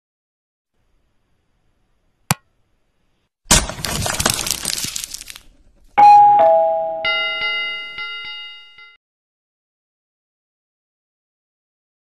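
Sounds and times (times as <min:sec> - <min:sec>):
ringing bell: 0:06.0 - 0:09.0
two-note ding-dong chime: 0:06.0 - 0:09.0.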